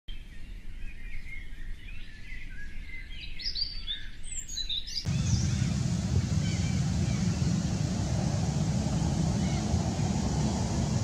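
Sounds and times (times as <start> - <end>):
small birds chirping: 0.2 - 11.0
loud low rumbling noise: 5.1 - 11.0.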